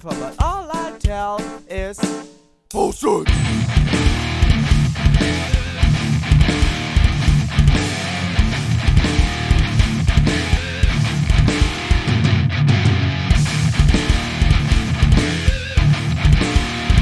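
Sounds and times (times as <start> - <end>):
steady drum beat: 0.0 - 12.2, 13.4 - 17.0
distorted electric guitar strumming: 3.2 - 17.0.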